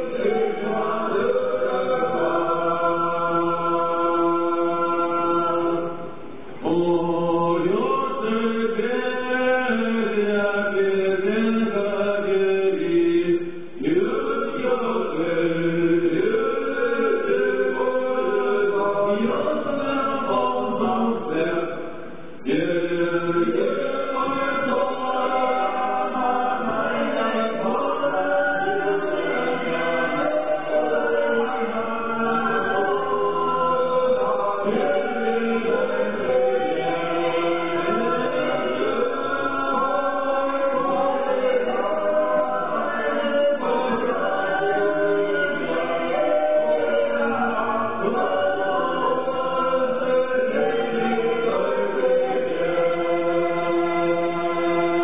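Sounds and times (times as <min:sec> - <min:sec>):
choir chanting held notes: 0:00.0 - 0:55.0.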